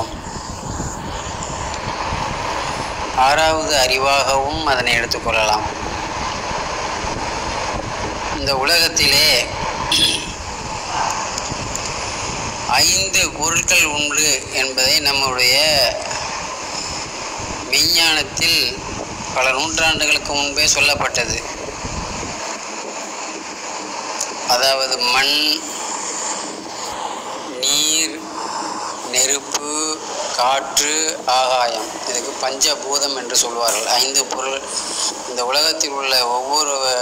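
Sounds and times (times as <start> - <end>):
faint hum: 0.0 - 37.0
outdoor background noise: 0.0 - 37.0.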